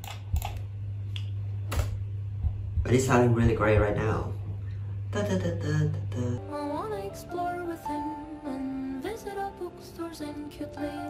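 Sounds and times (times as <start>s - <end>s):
computer keyboard clicks: 0.0s - 0.6s
steady low hum: 0.0s - 10.7s.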